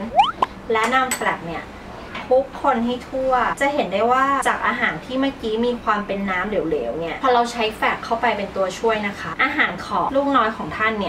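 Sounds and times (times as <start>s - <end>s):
spoon clinking against bowl: 0.8s - 1.4s.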